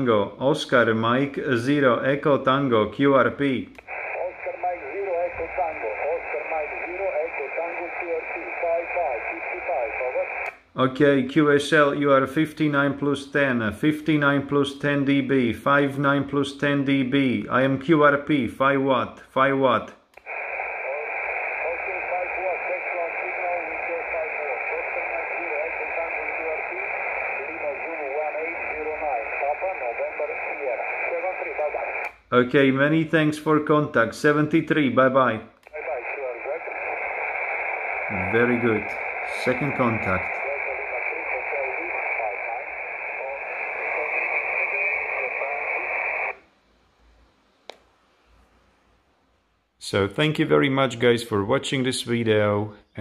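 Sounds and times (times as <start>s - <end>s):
radio static hiss: 3.3s - 10.7s, 20.2s - 33.6s, 35.6s - 46.4s
muffled voice over radio: 3.9s - 10.5s, 20.3s - 32.1s, 35.7s - 46.3s.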